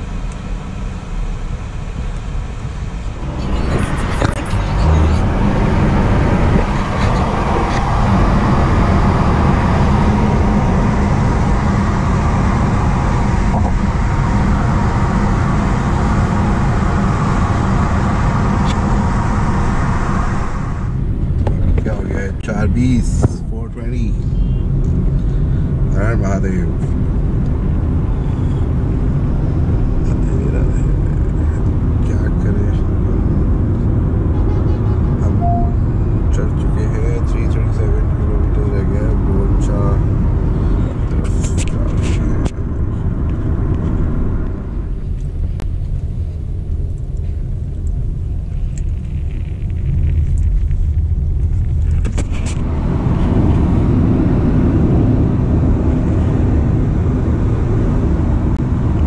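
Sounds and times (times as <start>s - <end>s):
road and tyre rumble in car: 0.0s - 59.0s.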